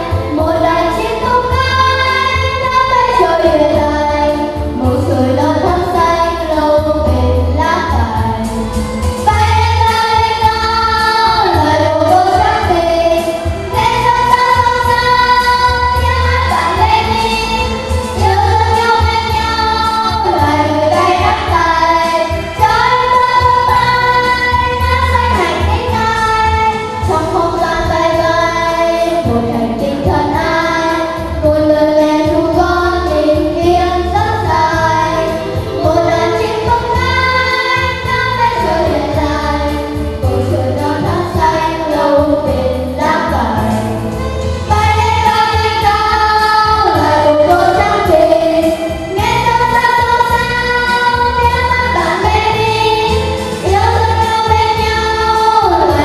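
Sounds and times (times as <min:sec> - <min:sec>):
girls singing into microphones: 0:00.0 - 0:56.0.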